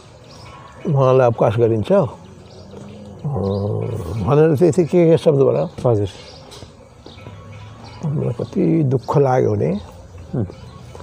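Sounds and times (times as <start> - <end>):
man talking: 3.2 - 6.2, 8.0 - 10.6.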